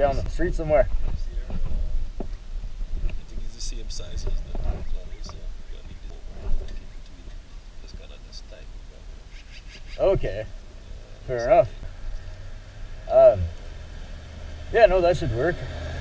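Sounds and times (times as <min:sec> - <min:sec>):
low steady rumble: 0:00.0 - 0:09.3, 0:10.1 - 0:16.0.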